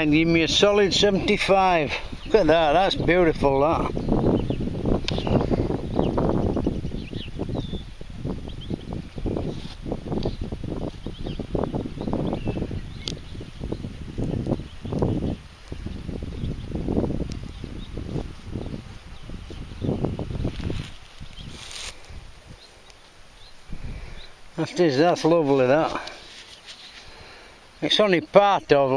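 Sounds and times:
wind buffeting microphone: 0:00.0 - 0:26.2
faint bird chirps: 0:04.0 - 0:09.5.

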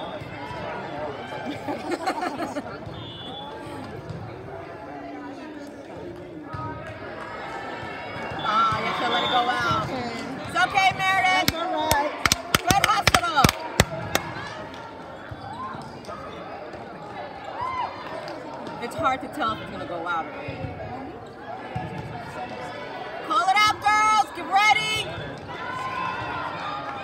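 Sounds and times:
players and spectators voices: 0:00.0 - 0:27.0
volleyball bouncing on floor: 0:10.8 - 0:14.3.

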